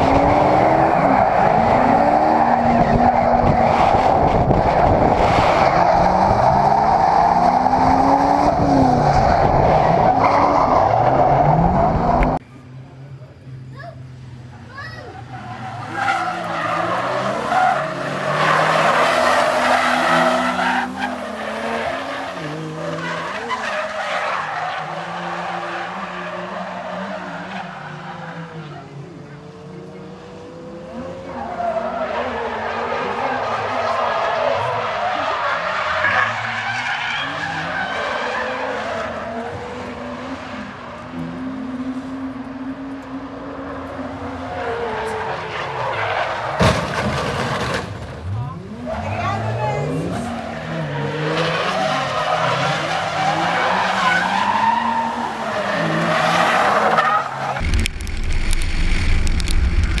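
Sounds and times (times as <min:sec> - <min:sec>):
tyres skidding and squealing: 0:00.0 - 0:12.5, 0:13.5 - 1:00.0
car engines revving: 0:00.0 - 1:00.0.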